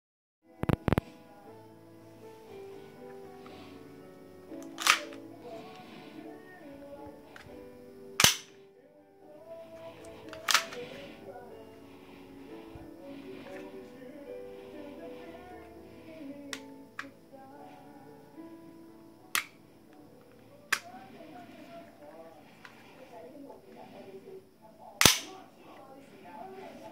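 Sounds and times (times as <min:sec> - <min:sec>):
background music: 0:00.5 - 0:26.9
pistol slide clicking: 0:04.6 - 0:05.2, 0:08.2 - 0:08.5, 0:10.3 - 0:10.8, 0:25.0 - 0:25.3.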